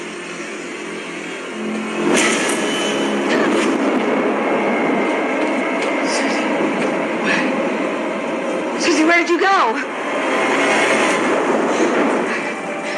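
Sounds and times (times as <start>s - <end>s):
dense rumbling drone: 0.0s - 12.9s.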